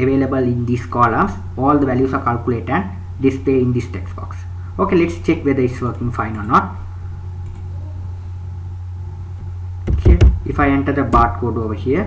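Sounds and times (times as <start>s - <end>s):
person speaking: 0.0s - 6.9s, 9.9s - 12.0s
low background hum: 0.0s - 12.0s.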